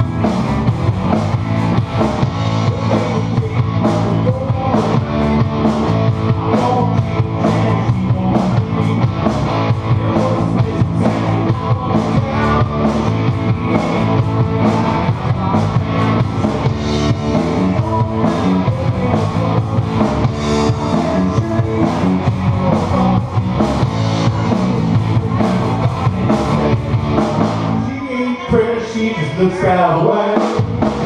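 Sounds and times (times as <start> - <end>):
live rock band playing: 0.0 - 31.0.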